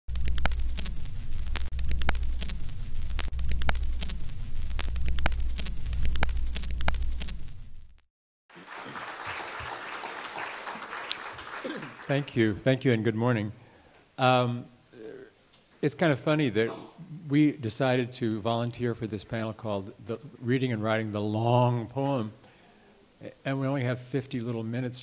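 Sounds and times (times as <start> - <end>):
audience applauding: 8.5 - 12.6.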